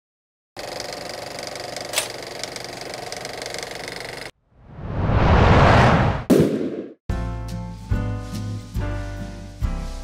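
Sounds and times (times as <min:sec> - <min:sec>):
film projector clattering: 0:00.6 - 0:04.3
sharp projector click: 0:01.9 - 0:02.2.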